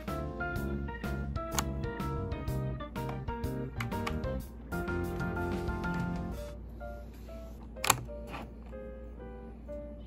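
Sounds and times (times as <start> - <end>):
background music: 0.0 - 10.0
plastic click: 1.5 - 1.7, 7.8 - 8.1.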